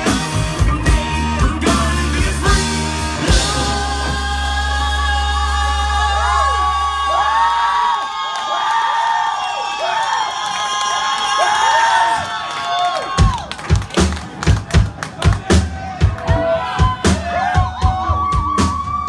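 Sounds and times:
rock band held chord: 0:00.0 - 0:07.3
crowd cheering: 0:02.6 - 0:19.0
rhythmic claps: 0:12.5 - 0:16.3.

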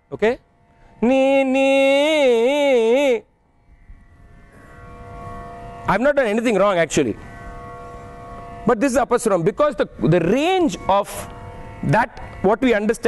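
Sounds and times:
man singing unaccompanied: 0:01.0 - 0:03.3.

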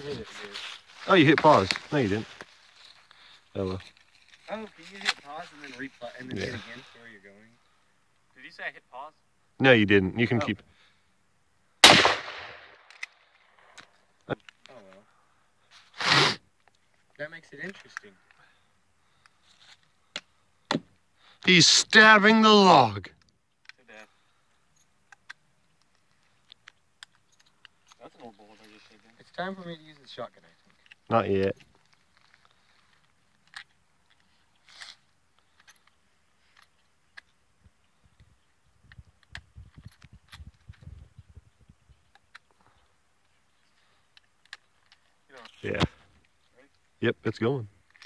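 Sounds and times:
rifle shot: 0:11.8 - 0:13.0
rifle scrape: 0:34.6 - 0:35.0.

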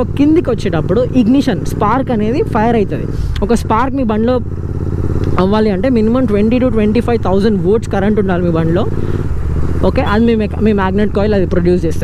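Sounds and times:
person speaking: 0:00.0 - 0:04.5, 0:05.2 - 0:12.0
motorcycle engine running: 0:00.0 - 0:12.0.

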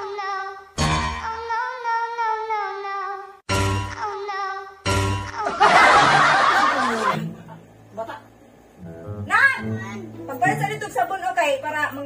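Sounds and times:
canned laughter: 0:05.4 - 0:07.5.

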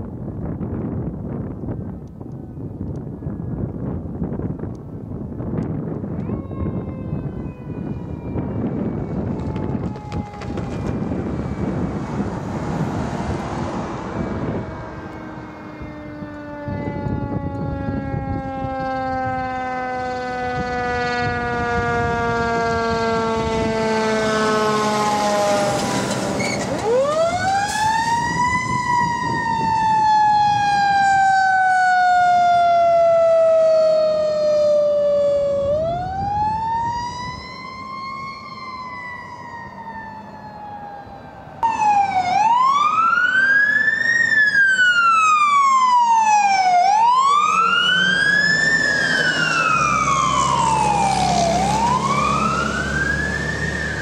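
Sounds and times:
fire engine siren sliding down: 0:01.4 - 0:54.0
wail siren in slow sweeps: 0:01.6 - 0:03.8, 0:06.0 - 0:54.0
loud siren wailing quickly: 0:06.0 - 0:54.0.

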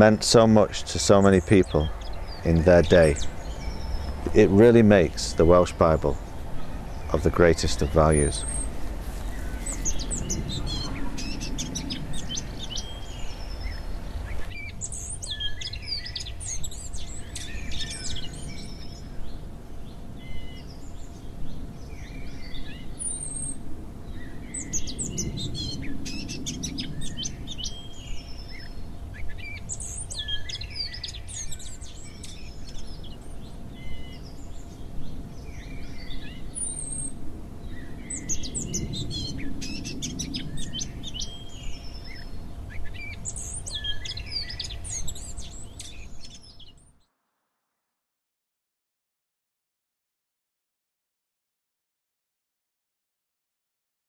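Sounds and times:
songbirds singing and chirping: 0:00.0 - 0:47.1
low rumble: 0:01.9 - 0:14.3.

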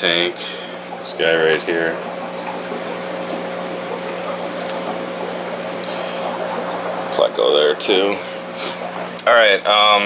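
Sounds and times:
low mechanical hum: 0:00.0 - 0:10.0
water bubbling and trickling: 0:00.1 - 0:09.3.

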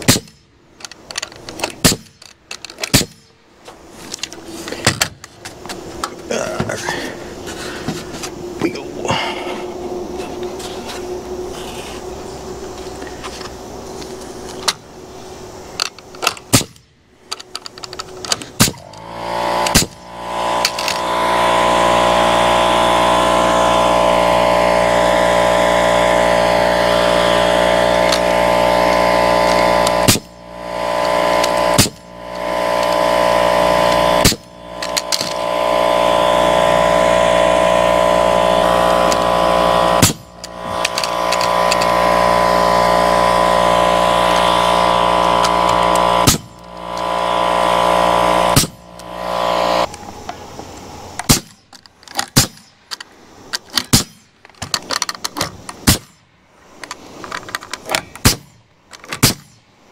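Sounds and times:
nail gun shots: 0:00.0 - 0:00.5, 0:01.5 - 0:03.4, 0:16.2 - 0:16.8, 0:18.3 - 0:19.0, 0:19.6 - 0:20.0, 0:29.8 - 0:30.4, 0:31.3 - 0:32.1, 0:33.9 - 0:35.4, 0:40.0 - 0:41.9, 0:45.7 - 0:46.6, 0:48.5 - 0:48.8, 0:51.2 - 0:51.6, 0:52.2 - 0:52.8, 0:53.7 - 0:54.8, 0:55.4 - 0:56.2, 0:57.8 - 0:59.6
air compressor running: 0:00.8 - 0:16.6, 0:17.4 - 0:51.6.

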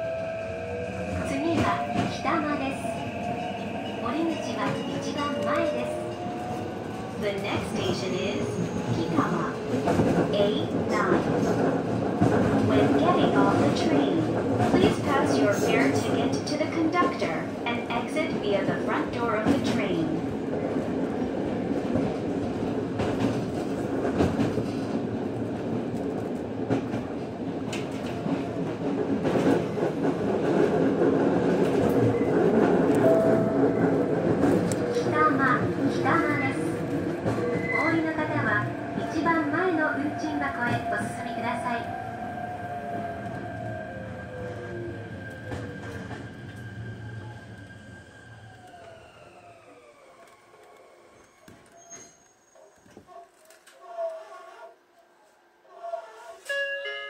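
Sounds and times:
train rumbling: 0:00.0 - 0:52.2
wheel squeals: 0:51.2 - 0:53.2.

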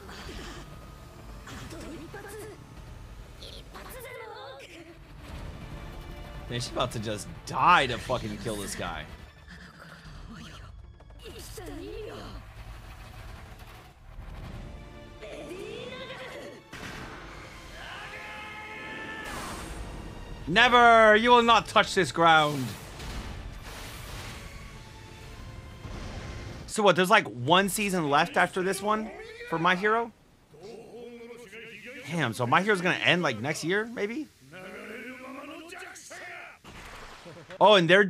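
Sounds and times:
faint background music: 0:00.0 - 0:13.2, 0:14.6 - 0:22.7
strained drawn-out cry: 0:17.7 - 0:19.5, 0:30.5 - 0:33.5, 0:34.3 - 0:36.6
strained voice shouting: 0:27.5 - 0:36.6.

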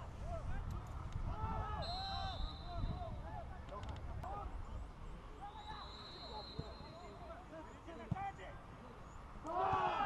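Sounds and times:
referee's whistle blast: 0:01.8 - 0:03.0
players shouting: 0:09.4 - 0:10.0.

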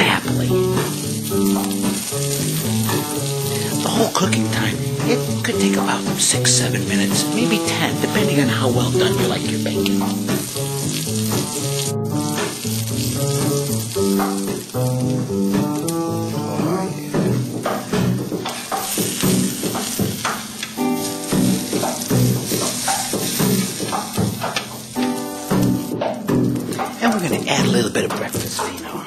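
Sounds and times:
background music: 0:00.0 - 0:29.0
food sizzling in a pan: 0:00.0 - 0:29.0
spatula scraping a pan: 0:17.7 - 0:25.6.

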